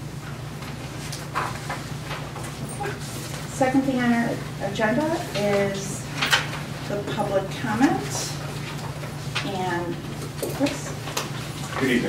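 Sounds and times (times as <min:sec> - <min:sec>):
low room hum: 0:00.0 - 0:12.0
paper rustling: 0:00.6 - 0:03.5.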